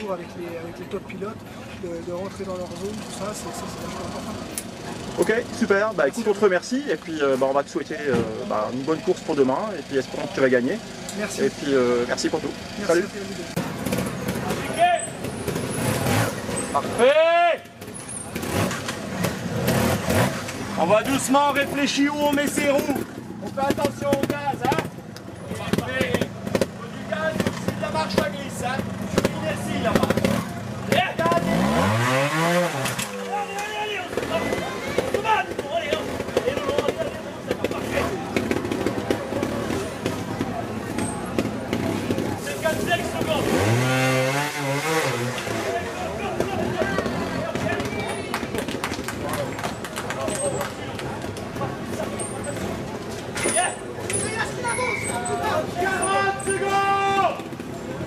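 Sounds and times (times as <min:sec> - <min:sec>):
motorcycle engine revving: 0:02.1 - 0:17.1, 0:17.7 - 0:48.8, 0:57.2 - 0:58.0.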